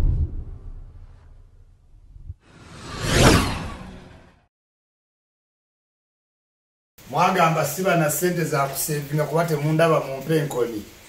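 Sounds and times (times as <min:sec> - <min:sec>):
whoosh swish: 0:00.0 - 0:04.4.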